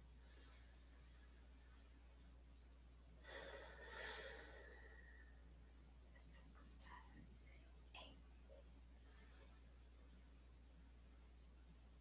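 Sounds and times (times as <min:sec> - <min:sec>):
person breathing in slowly: 0:03.2 - 0:05.5.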